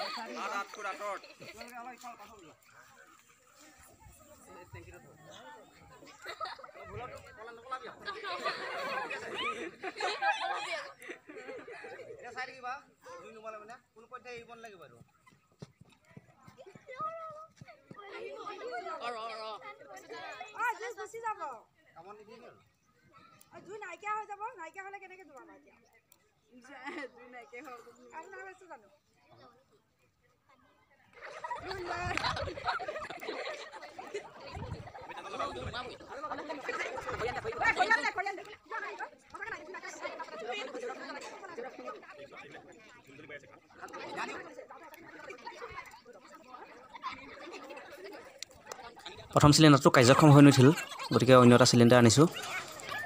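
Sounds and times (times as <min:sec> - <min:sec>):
indistinct chatter: 0:00.0 - 0:14.0, 0:15.0 - 0:53.0
voices talking over each other: 0:00.0 - 0:15.6, 0:31.0 - 0:53.0.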